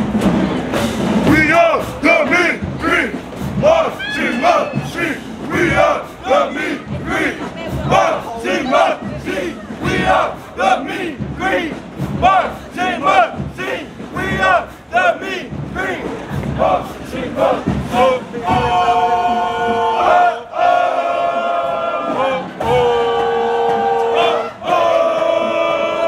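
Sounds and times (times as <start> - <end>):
group chanting shouted calls: 1.4 - 26.0.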